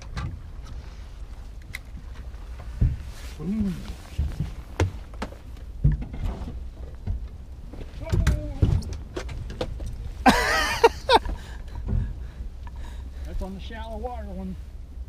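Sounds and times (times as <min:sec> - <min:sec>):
wind rumble on microphone: 0:00.0 - 0:10.3.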